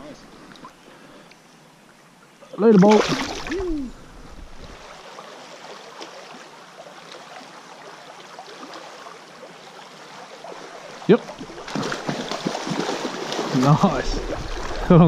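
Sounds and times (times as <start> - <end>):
stream running over riffles: 0.0 - 15.0
fish splashing at surface: 2.8 - 3.7, 11.3 - 13.6.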